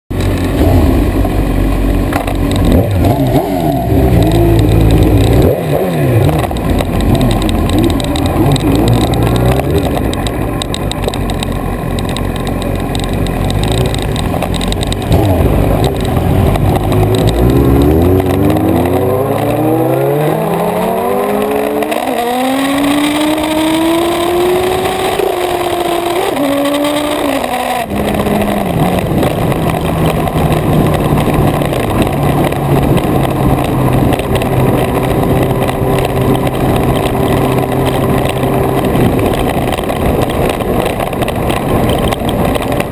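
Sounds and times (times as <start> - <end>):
motorcycle engine at low revs: 0.1 - 42.9.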